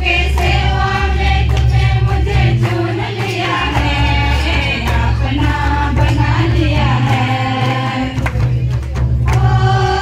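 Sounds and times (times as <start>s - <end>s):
low beat and light percussion: 0.0s - 10.0s
women singing into microphones: 0.0s - 10.0s.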